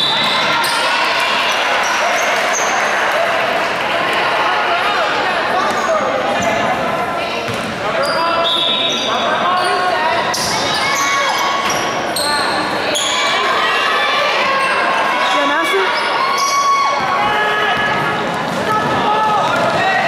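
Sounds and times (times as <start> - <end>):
voices talking and calling out: 0.0 - 20.0.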